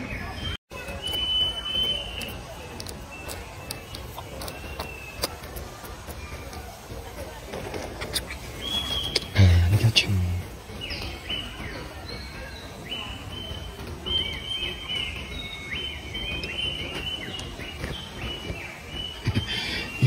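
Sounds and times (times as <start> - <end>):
birds chirping: 0.0 - 20.0
low outdoor background noise: 0.0 - 20.0.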